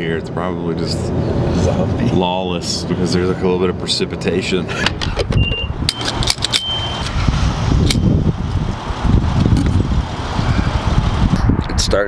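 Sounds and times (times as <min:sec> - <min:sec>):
wind rumble on microphone: 0:04.9 - 0:12.0
short high beep: 0:05.4 - 0:07.1.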